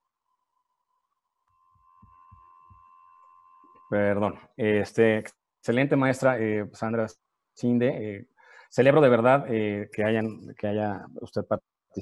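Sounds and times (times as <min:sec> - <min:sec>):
faint room noise: 0:00.2 - 0:12.0
faint steady tone: 0:00.3 - 0:11.6.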